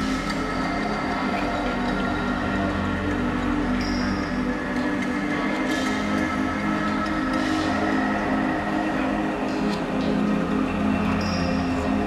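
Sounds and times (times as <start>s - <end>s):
low drone: 0.0s - 12.0s
sustained synth chords: 0.0s - 12.0s.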